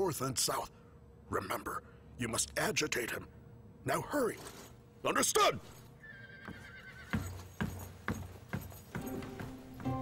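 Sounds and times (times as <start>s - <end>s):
steady footsteps: 6.4s - 10.0s
background music: 7.8s - 10.0s.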